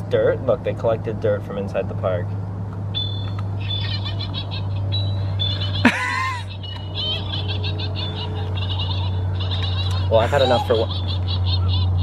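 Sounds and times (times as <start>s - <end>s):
rapid chirping and trilling: 2.9s - 12.0s
sweeping cry: 5.0s - 10.9s.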